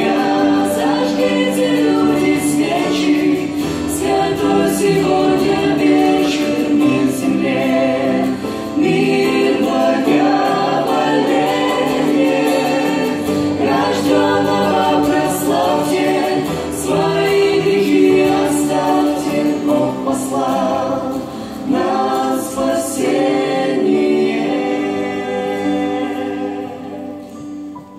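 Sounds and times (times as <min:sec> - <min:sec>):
vocal group singing in harmony: 0:00.0 - 0:27.7
acoustic guitar: 0:00.0 - 0:27.9.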